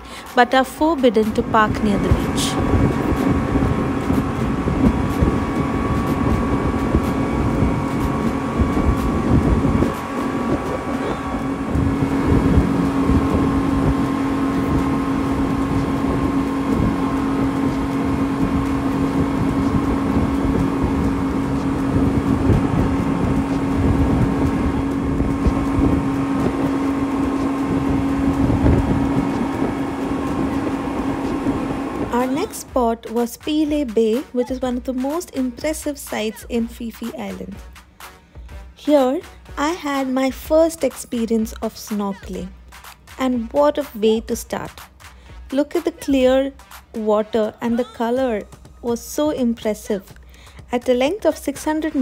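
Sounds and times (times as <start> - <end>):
outboard motors droning: 0.0 - 52.0
wake spray rushing: 1.2 - 32.8.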